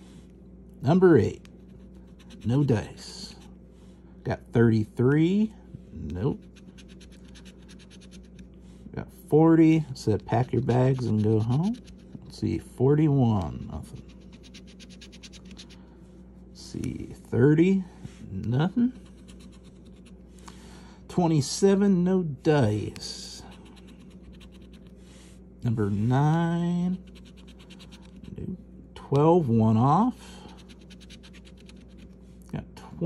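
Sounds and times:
coin scratching lottery ticket: 0:01.7 - 0:03.4, 0:06.4 - 0:08.4, 0:10.3 - 0:12.2, 0:13.7 - 0:15.8, 0:27.0 - 0:28.4, 0:30.6 - 0:32.0.

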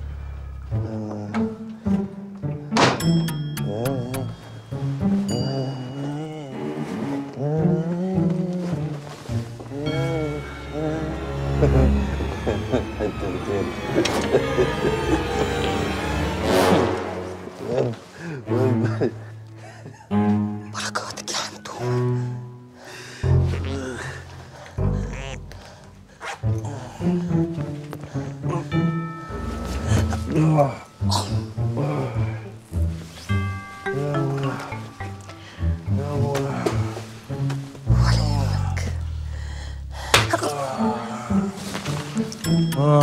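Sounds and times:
low musical drone: 0:00.0 - 0:02.7, 0:03.3 - 0:43.0
drama score with low held notes: 0:00.0 - 0:02.8, 0:03.6 - 0:33.2, 0:35.2 - 0:42.7
wordless voices: 0:37.9 - 0:39.1, 0:40.3 - 0:41.7.

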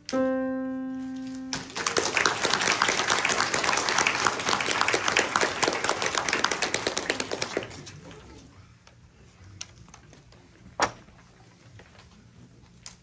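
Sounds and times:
audience applauding: 0:01.5 - 0:08.3.

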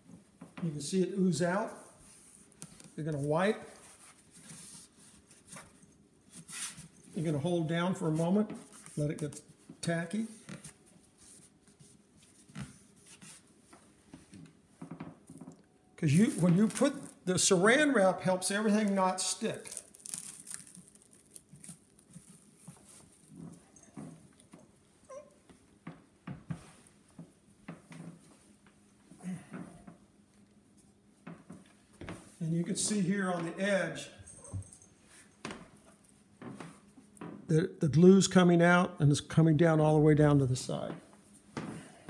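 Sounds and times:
plastic wrap rustling: 0:16.0 - 0:17.5, 0:18.7 - 0:23.5.

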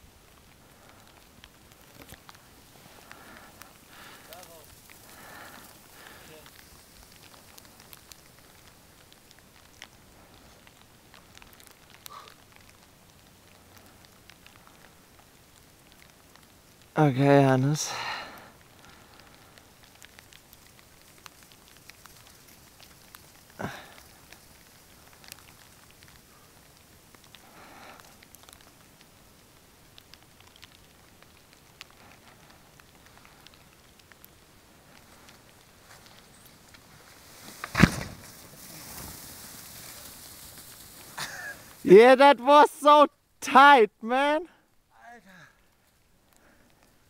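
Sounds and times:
hiss of spraying snow: 0:00.0 - 0:12.5, 0:16.9 - 0:43.0
faint crackles: 0:00.0 - 0:47.0
skier landing thump: 0:37.5 - 0:39.4.

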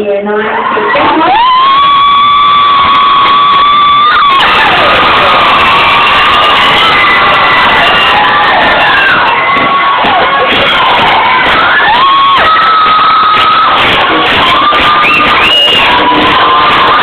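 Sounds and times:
crowd cheering and screaming: 0:00.4 - 0:17.0
long high held cry: 0:01.1 - 0:17.0.

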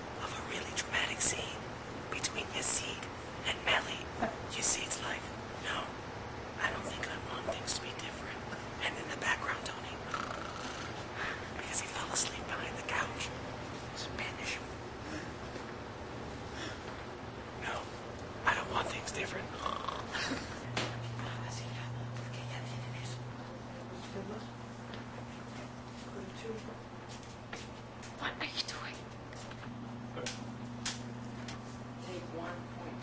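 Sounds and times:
low electrical hum: 0:00.0 - 0:33.0
person whispering: 0:00.2 - 0:01.6, 0:02.2 - 0:06.0, 0:06.6 - 0:11.0, 0:11.6 - 0:15.3, 0:17.6 - 0:20.1, 0:21.0 - 0:23.2, 0:28.2 - 0:29.0.

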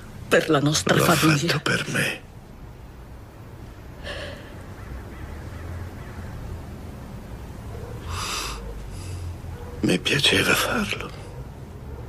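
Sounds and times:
woman crying breath: 0:04.0 - 0:04.6.

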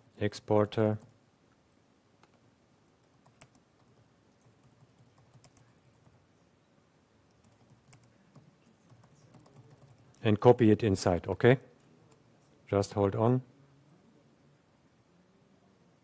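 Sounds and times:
faint typing on keyboard: 0:00.1 - 0:01.6, 0:02.2 - 0:06.4, 0:07.2 - 0:10.6.

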